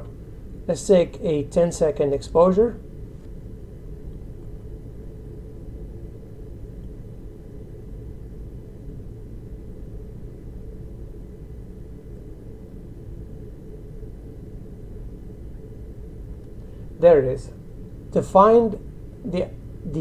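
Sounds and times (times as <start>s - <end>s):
faint hum: 0.0s - 20.0s
low background rumble: 0.0s - 20.0s.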